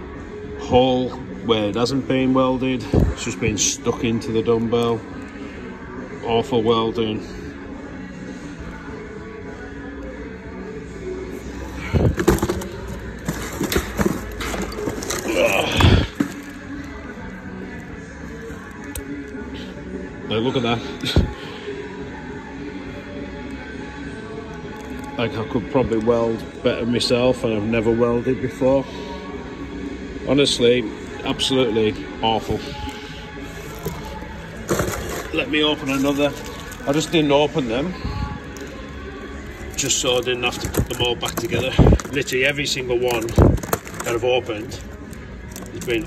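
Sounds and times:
packaging rustling: 11.9s - 16.9s, 33.5s - 37.4s, 39.4s - 46.0s
scraping clatter: 12.0s - 16.5s, 33.6s - 36.8s.

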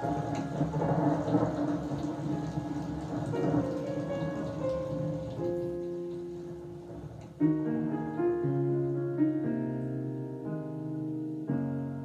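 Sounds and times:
steady noise wash: 0.0s - 8.9s
slow instrumental piano music: 0.0s - 12.0s.

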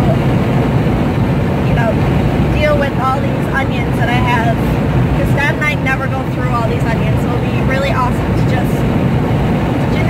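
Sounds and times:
car road and wind noise: 0.0s - 10.0s.

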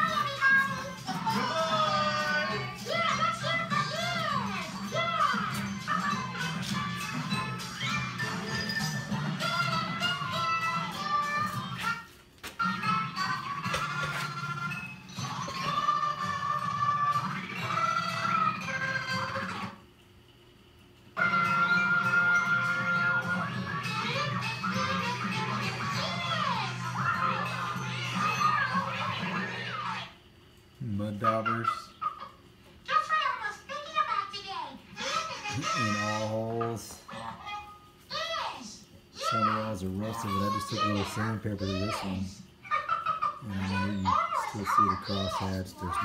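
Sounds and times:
music with singing voices: 0.0s - 19.8s, 21.2s - 30.1s.

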